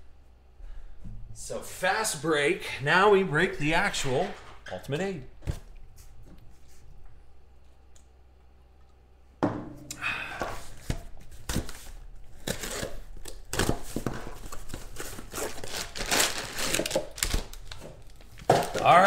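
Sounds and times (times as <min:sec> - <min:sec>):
cardboard box tearing: 0:12.4 - 0:13.7, 0:14.9 - 0:17.4
cardboard crinkling and knocks: 0:13.5 - 0:19.0.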